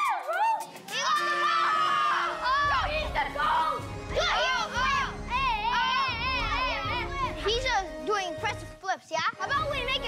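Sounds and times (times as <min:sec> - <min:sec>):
children squealing and shouting: 0:00.0 - 0:07.4
background music: 0:00.0 - 0:10.0.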